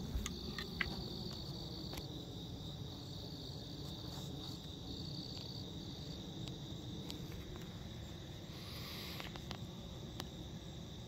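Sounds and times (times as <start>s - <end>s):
crickets trilling: 0.0s - 11.0s
intermittent insect trill: 0.0s - 11.0s.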